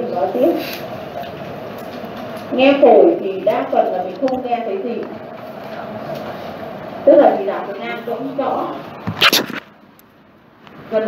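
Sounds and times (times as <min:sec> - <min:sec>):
short sharp double burst: 0:09.2 - 0:09.7.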